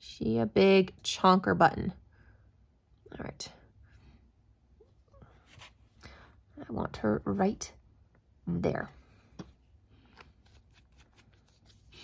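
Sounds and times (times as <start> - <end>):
hands handling paper: 10.0 - 12.0.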